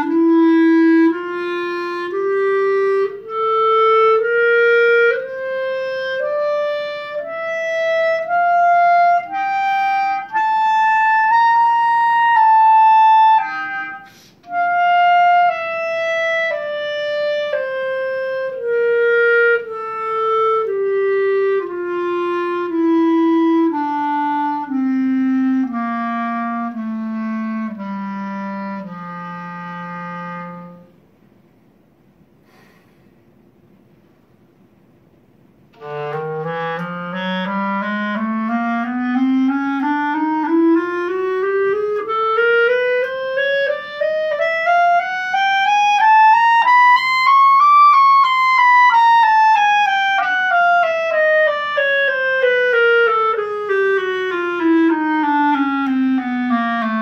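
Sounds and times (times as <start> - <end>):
solo clarinet playing a scale: 0.0 - 31.0, 35.7 - 57.0
quick breath: 14.0 - 14.4, 32.4 - 33.3.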